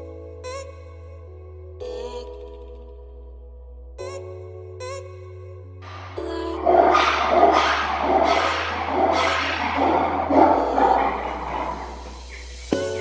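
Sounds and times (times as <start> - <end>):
background music with bass: 0.0 - 13.0
lemur pulsing harsh call: 6.6 - 12.6.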